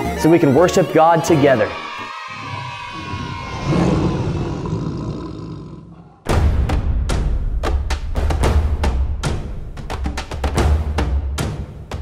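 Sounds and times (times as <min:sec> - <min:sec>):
lion roaring: 0:02.3 - 0:06.3.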